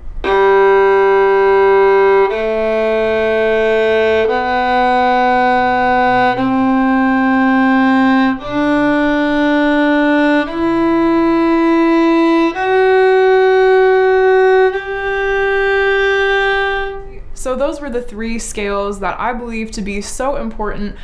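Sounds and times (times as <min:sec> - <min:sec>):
solo violin playing a scale: 0:00.0 - 0:17.3.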